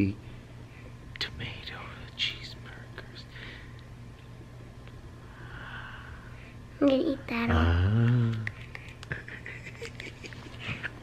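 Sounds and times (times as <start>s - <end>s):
faint low hum: 0.0s - 11.0s
person whispering: 1.2s - 3.3s.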